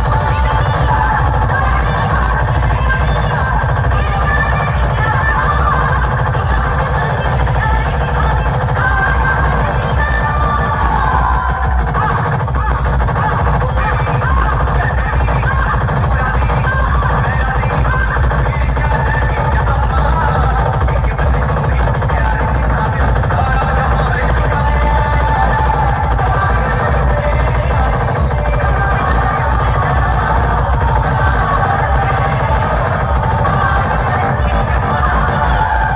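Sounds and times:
loud electronic dance music: 0.0 - 35.9.

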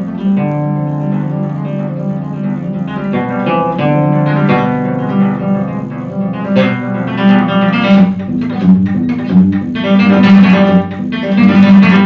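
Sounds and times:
classical guitar fingerstyle: 0.0 - 12.0.

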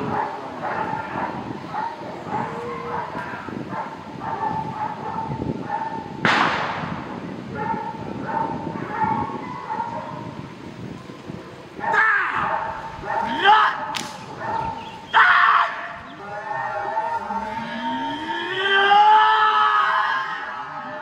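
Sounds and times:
dog barking: 0.0 - 6.1, 7.5 - 10.3, 11.8 - 14.9
sharp crack: 6.2 - 7.1, 13.9 - 14.3.

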